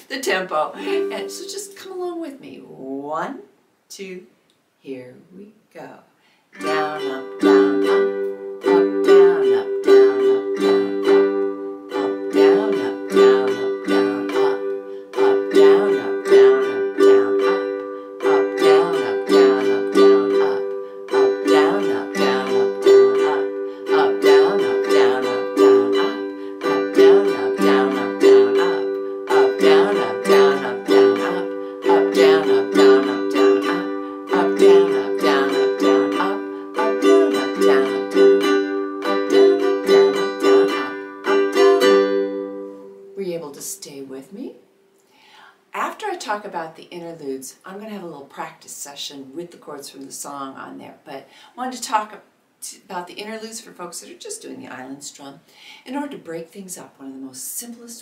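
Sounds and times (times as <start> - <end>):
ukulele strumming: 0.4 - 1.8, 6.6 - 44.2.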